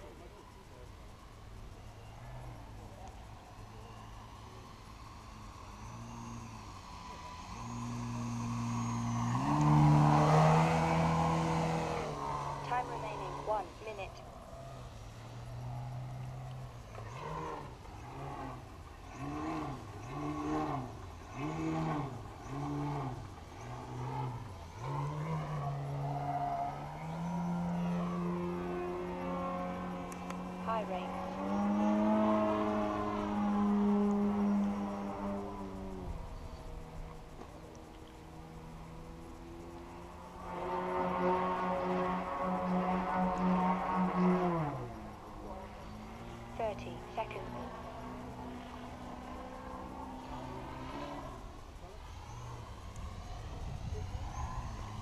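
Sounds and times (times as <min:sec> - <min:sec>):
model plane engine and propeller: 0:00.0 - 0:55.0.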